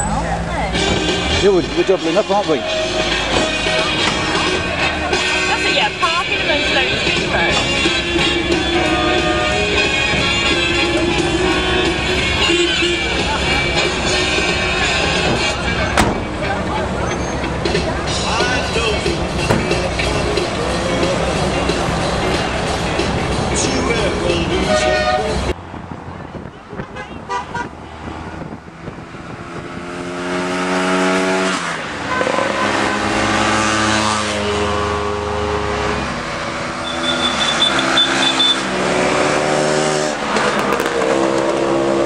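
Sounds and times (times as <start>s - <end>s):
crowd noise: 0.0s - 28.7s
road traffic noise: 0.0s - 42.0s
car horns tooting: 0.8s - 22.4s, 23.8s - 25.6s, 26.7s - 27.8s, 30.6s - 42.0s.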